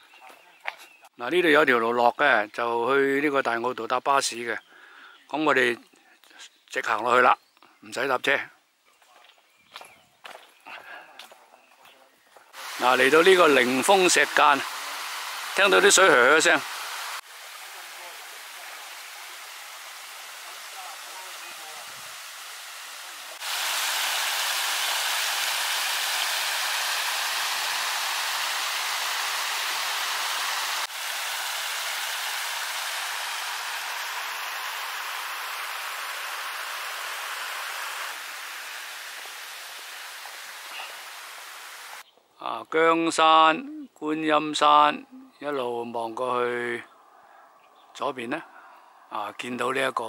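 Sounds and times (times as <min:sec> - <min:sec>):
stream rushing over stones: 0:12.6 - 0:42.0.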